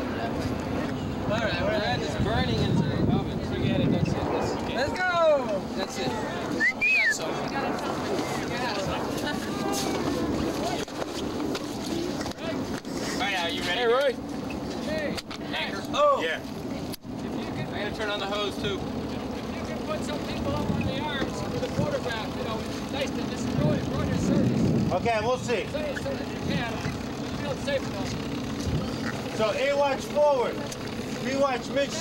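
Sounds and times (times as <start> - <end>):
outdoor noise: 0.0 - 32.0
voices calling out: 0.0 - 32.0
low hum: 13.9 - 32.0.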